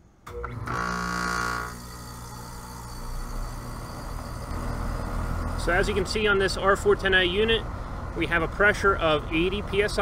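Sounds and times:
air conditioner hum: 0.0 - 10.0
high machine whine: 0.0 - 10.0.

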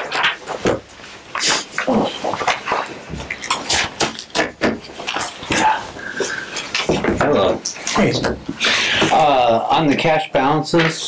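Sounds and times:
paper sheets rustling: 0.0 - 8.2
low voices: 1.4 - 3.0, 5.4 - 11.0.

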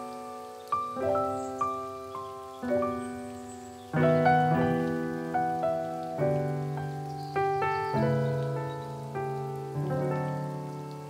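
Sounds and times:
rain-like hiss: 0.0 - 11.0
solo piano melody: 0.0 - 11.0.

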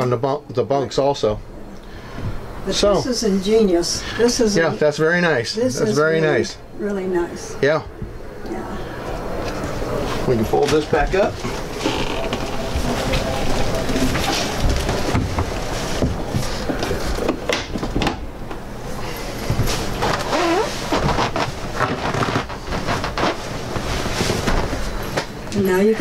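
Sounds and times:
crowd chatter: 11.4 - 15.7.

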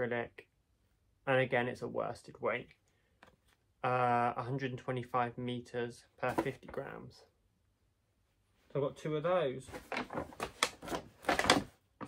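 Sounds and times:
paper bag crinkling: 9.7 - 11.7.

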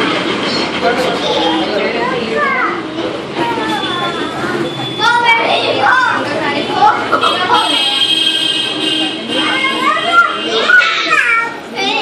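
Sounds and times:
children calling and chattering: 0.0 - 12.0
children squealing: 3.4 - 6.2, 9.4 - 12.0.

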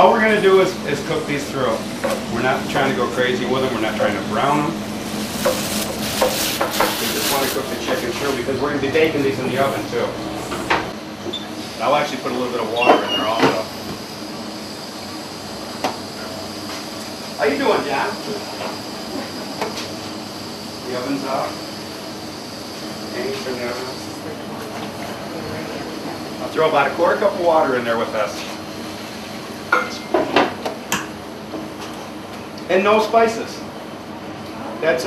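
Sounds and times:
steady background hiss: 0.0 - 11.0
water sizzling in hot pan: 5.0 - 8.0.

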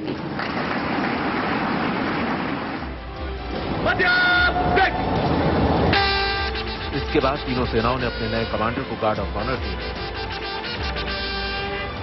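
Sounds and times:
outdoor rushing noise: 0.0 - 7.0
trumpet call: 5.8 - 12.0.

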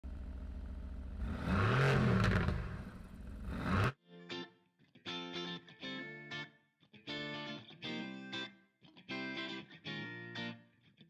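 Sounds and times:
car engine revving: 0.0 - 3.9.

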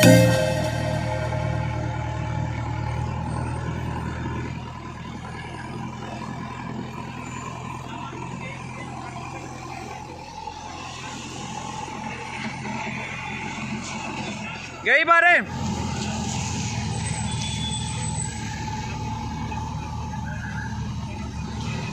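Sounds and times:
background music: 0.0 - 3.1
diesel engine running under load: 0.0 - 21.9.

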